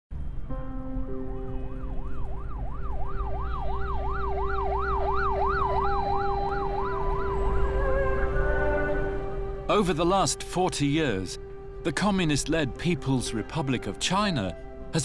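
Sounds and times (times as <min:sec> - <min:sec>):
low traffic rumble: 0:00.1 - 0:13.1
emergency siren yelping: 0:01.8 - 0:09.7.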